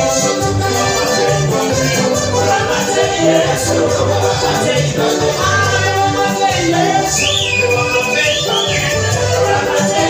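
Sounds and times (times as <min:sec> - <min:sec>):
bass line: 0:00.0 - 0:10.0
praise and worship band music: 0:00.0 - 0:10.0.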